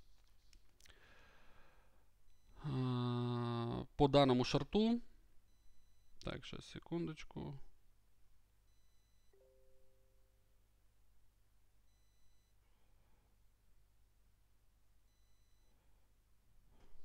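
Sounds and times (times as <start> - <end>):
faint electronic beeps: 2.3 - 3.8, 5.5 - 6.5, 8.7 - 10.1, 11.9 - 12.6, 15.1 - 16.0.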